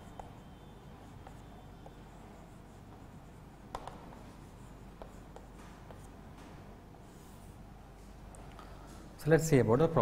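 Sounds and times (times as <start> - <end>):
chalk writing on chalkboard: 0.0 - 6.2
sharp chalk taps: 0.0 - 6.5.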